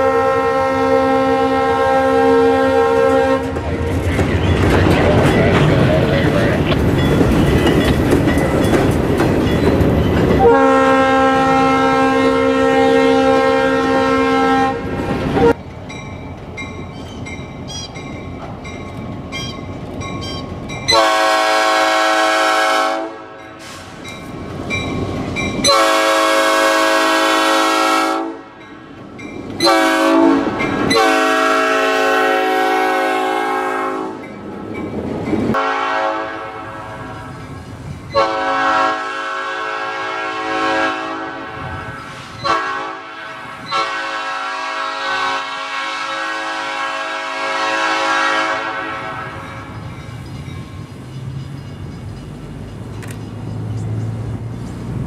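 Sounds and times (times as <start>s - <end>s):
train air horn blasts: 0.0s - 4.0s, 10.4s - 15.6s, 20.9s - 24.0s, 25.6s - 28.6s, 29.6s - 34.3s, 35.5s - 37.3s, 38.1s - 49.7s
train cars rolling on rails: 0.0s - 55.0s.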